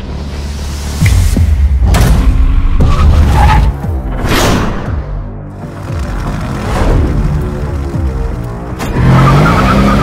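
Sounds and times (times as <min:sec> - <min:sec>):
music: 0:00.0 - 0:10.0
car engine revving: 0:05.6 - 0:10.0.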